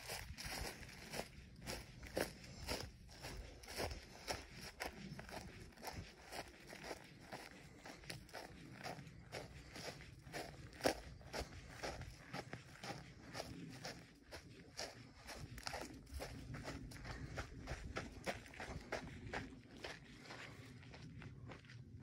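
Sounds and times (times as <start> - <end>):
footsteps on dry grass: 0.0 - 22.0.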